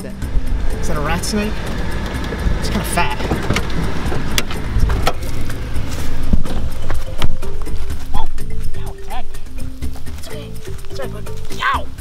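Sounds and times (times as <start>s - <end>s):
background music with held notes: 0.0s - 12.0s
engine and tyre rumble: 0.0s - 12.0s
gravel clicking: 0.2s - 12.0s.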